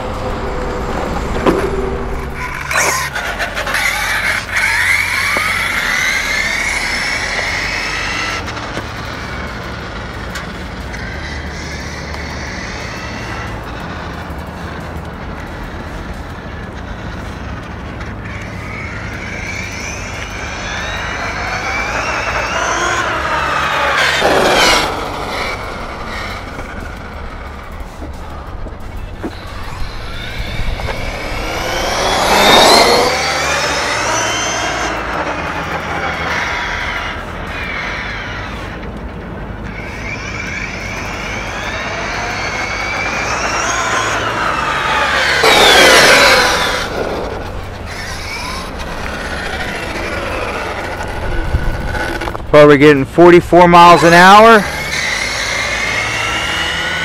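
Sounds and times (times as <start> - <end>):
electric toy truck motor whining: 0.0 - 52.5, 54.0 - 57.0.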